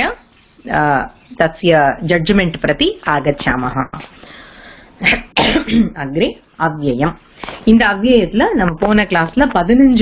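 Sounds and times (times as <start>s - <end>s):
person coughing: 5.0s - 6.0s.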